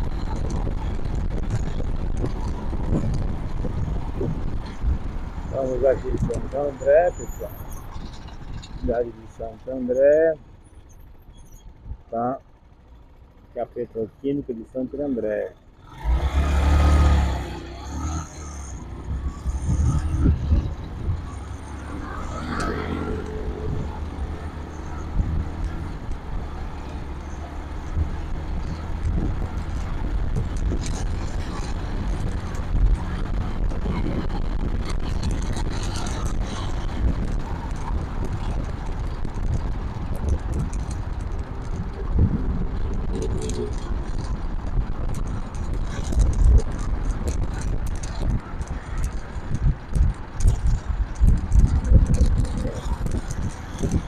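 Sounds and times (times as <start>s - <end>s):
wind buffeting microphone: 0.0s - 10.4s, 18.7s - 54.0s
motorcycle engine: 0.0s - 54.0s.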